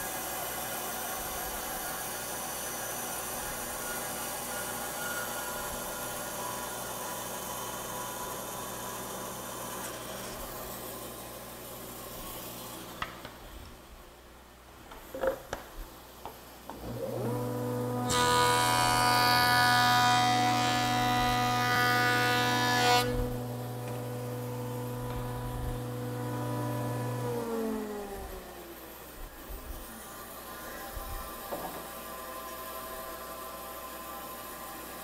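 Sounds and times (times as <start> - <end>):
board cut by jointer knives: 16.7 - 28.6
jointer motor humming: 16.8 - 28.5.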